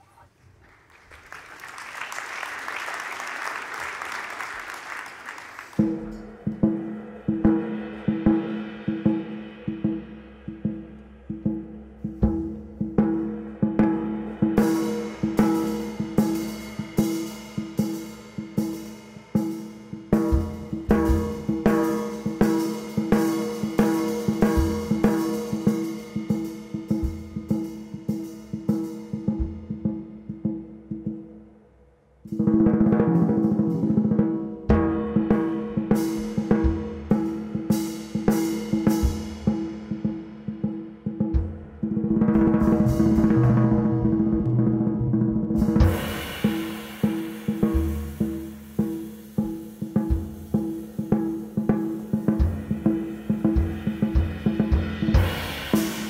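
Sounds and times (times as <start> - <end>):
cymbals: 2.0 - 56.0
jazz drum solo: 5.8 - 31.5, 32.3 - 56.0.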